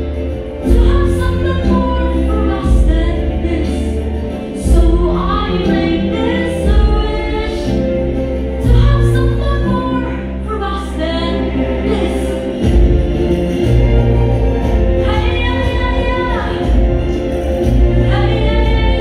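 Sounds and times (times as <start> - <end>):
backing music with heavy bass: 0.0 - 19.0.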